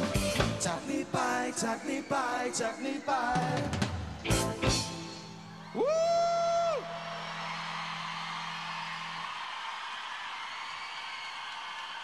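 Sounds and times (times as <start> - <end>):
crowd cheering and applauding: 4.9 - 12.0.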